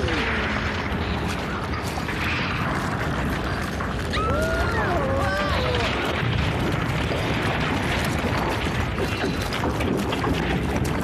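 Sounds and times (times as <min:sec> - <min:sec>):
crackling cartoon rumble: 0:00.0 - 0:11.0.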